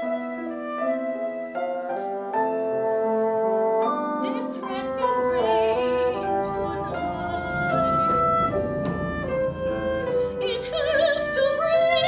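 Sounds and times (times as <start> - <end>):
instrumental accompaniment: 0.0 - 12.0
woman singing opera with vibrato: 4.2 - 12.0.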